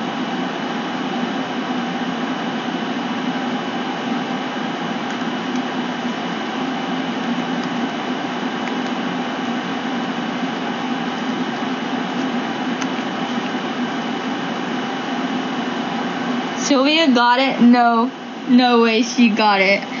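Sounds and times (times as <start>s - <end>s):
faint high whine: 0.0s - 20.0s.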